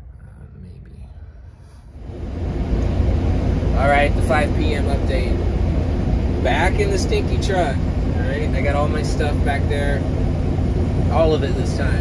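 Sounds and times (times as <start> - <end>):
road noise inside cab: 0.0 - 12.0
truck engine rumble: 0.0 - 12.0.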